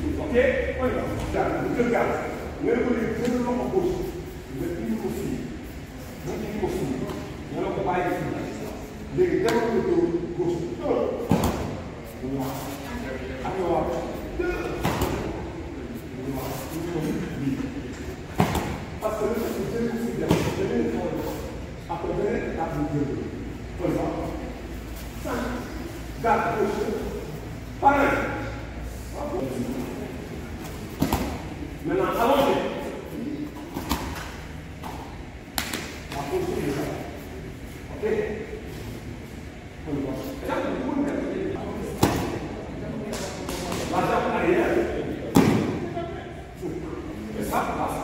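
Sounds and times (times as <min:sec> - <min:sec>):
man talking: 0:00.0 - 0:24.6, 0:25.2 - 0:30.3, 0:31.6 - 0:33.5, 0:35.9 - 0:38.9, 0:39.6 - 0:48.0
sharp cloth snaps: 0:35.5 - 0:36.2.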